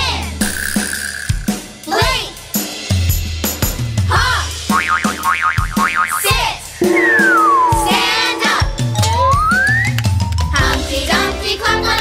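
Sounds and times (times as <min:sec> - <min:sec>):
children's song with drum beat: 0:00.0 - 0:00.5, 0:01.3 - 0:12.0
cartoon boing: 0:04.7 - 0:09.8
warbling whistle tone: 0:06.0 - 0:10.0.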